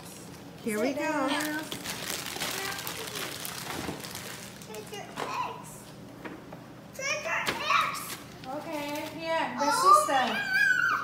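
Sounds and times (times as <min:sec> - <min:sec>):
children calling: 0:09.6 - 0:11.0.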